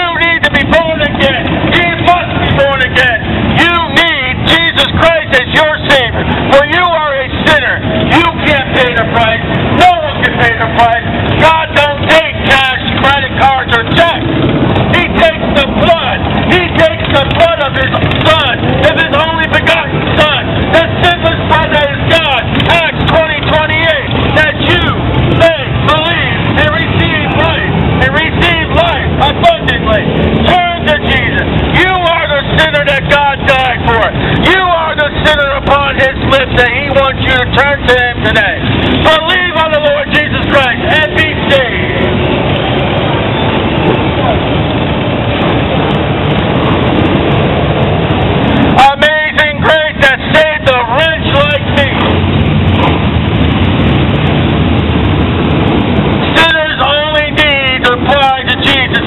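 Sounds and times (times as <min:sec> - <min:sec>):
loud continuous voice: 0:00.0 - 0:59.0
motorcycles and cars passing: 0:00.0 - 0:59.0.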